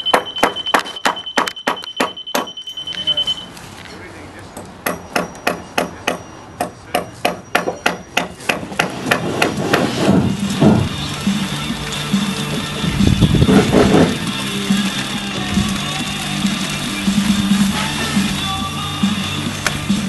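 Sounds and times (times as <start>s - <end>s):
hammer striking wooden boards: 0.0s - 2.6s, 4.8s - 10.9s
high electronic tone: 0.0s - 3.6s.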